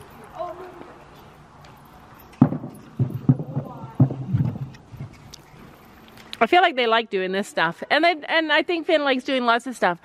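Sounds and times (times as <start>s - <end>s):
horse footfalls: 1.7s - 5.8s
hooves thumping on wooden bridge: 1.8s - 5.7s.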